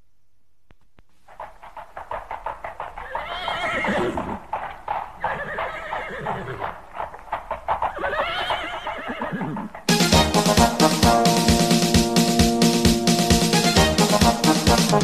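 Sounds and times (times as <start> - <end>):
hooves clip-clopping: 0.7 - 12.5
horse whinnying: 2.7 - 9.9
music: 9.9 - 15.0.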